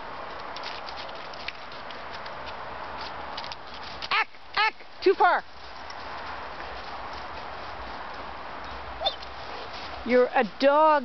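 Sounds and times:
woman shouting: 0:04.1 - 0:05.4.

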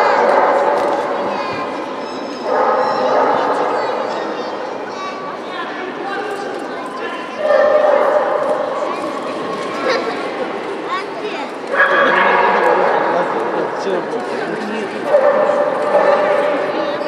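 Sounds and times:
voices: 0:00.0 - 0:17.0.

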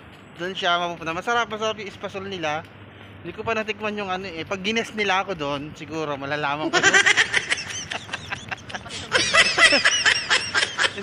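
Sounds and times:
person laughing: 0:06.6 - 0:11.0.

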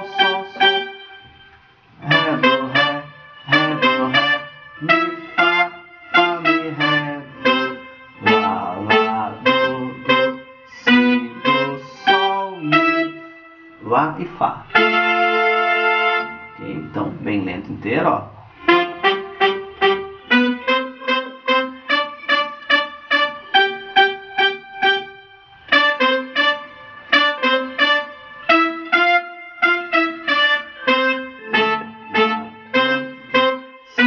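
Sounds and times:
synthesizer brass phrase: 0:00.0 - 0:17.7, 0:18.4 - 0:34.0.

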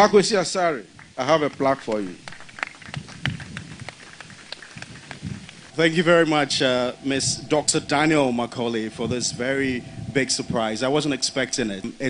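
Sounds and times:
hand claps: 0:01.0 - 0:05.7
faint low murmur: 0:02.9 - 0:12.0.

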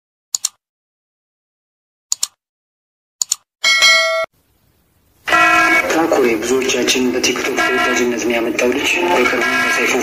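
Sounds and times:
notification bell ding: 0:03.6 - 0:04.3
loud steady pitched tone: 0:05.3 - 0:06.2, 0:07.6 - 0:08.3.

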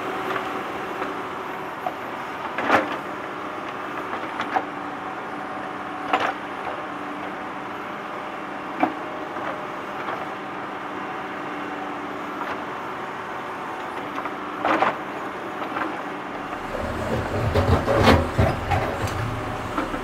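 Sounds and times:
deep rumble: 0:16.4 - 0:20.0
metal clanking on metal: 0:16.4 - 0:20.0
tractor engine running: 0:16.4 - 0:20.0.

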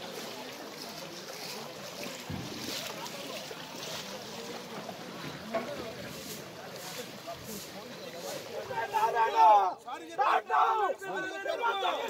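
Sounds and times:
feet splashing in water: 0:00.0 - 0:09.6.

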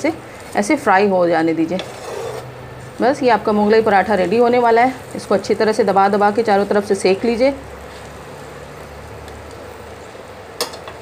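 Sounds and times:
food sizzling in a pan: 0:00.1 - 0:11.0.

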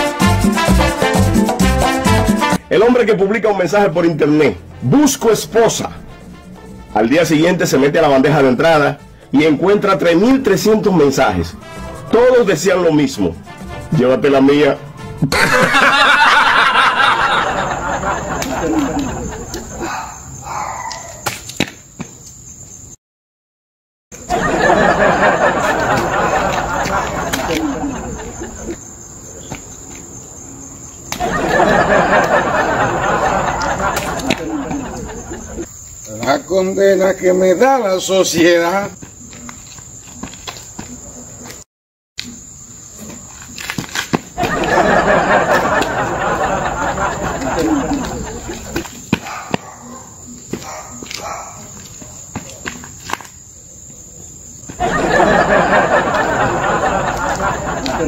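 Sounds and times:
crickets chirping: 0:02.5 - 0:23.0, 0:24.2 - 0:58.0
voices chattering: 0:16.9 - 0:20.5, 0:24.3 - 0:29.9, 0:31.2 - 0:41.6, 0:44.4 - 0:53.0, 0:53.6 - 0:58.0
shoes scuffing on pavement: 0:18.0 - 0:22.8, 0:25.2 - 0:32.6, 0:33.2 - 0:36.2, 0:38.2 - 0:41.7, 0:42.9 - 0:58.0.

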